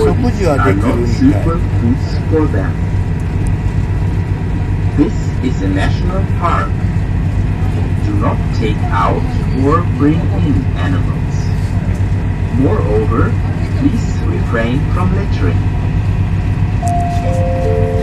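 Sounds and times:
voices talking: 0.0 - 3.0, 4.9 - 15.8
ferry engine droning: 0.0 - 18.0.

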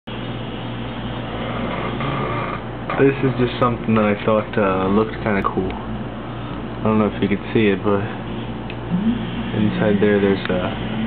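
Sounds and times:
constant low hum: 0.1 - 11.0.

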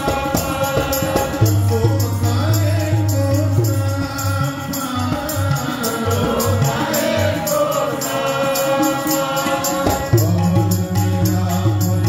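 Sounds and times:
harmonium drone: 0.0 - 12.0
tabla beat: 0.0 - 12.0
voices singing a hymn: 0.0 - 12.0.

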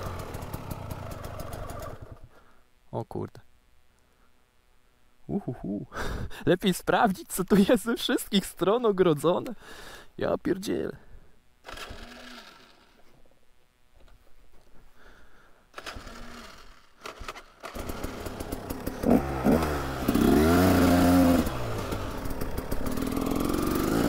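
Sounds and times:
two-stroke engine revving: 0.0 - 2.2, 11.7 - 12.9, 15.8 - 24.0.

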